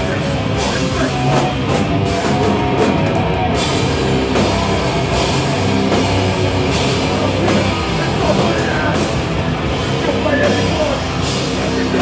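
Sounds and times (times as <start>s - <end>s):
punk band playing live: 0.0s - 12.0s.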